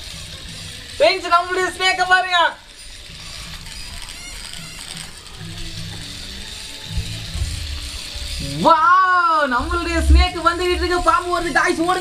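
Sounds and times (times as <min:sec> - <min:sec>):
toy gear motor whirring: 0:00.0 - 0:12.0.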